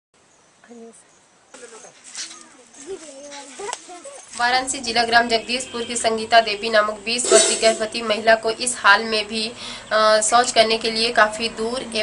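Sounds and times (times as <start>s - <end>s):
voices: 0.7s - 12.0s.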